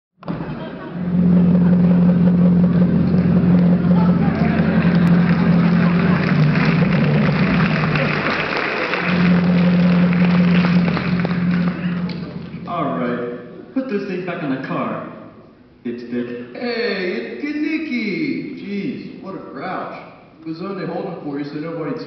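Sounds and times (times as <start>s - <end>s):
car engine running: 0.3s - 12.7s.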